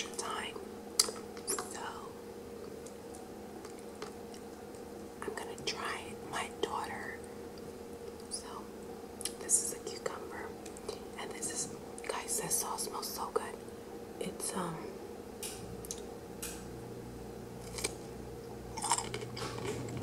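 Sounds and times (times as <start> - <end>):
woman whispering: 0.0 - 0.6, 1.5 - 2.2, 5.2 - 7.2, 8.3 - 8.7, 9.4 - 13.6
steady low hum: 0.0 - 20.0.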